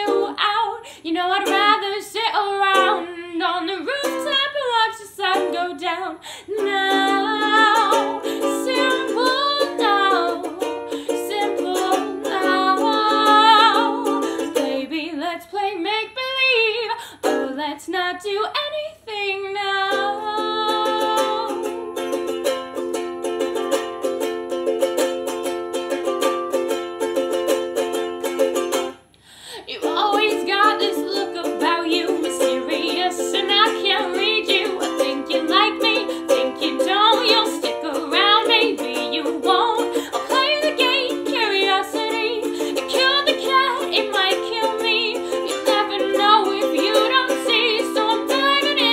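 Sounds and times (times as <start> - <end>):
ukulele strumming chords: 0.0 - 15.9, 16.7 - 17.7, 19.6 - 29.1, 29.8 - 48.9.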